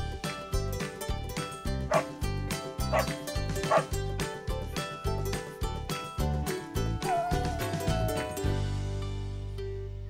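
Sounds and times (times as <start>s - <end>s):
dog barking: 2.9s - 3.1s, 3.7s - 3.9s.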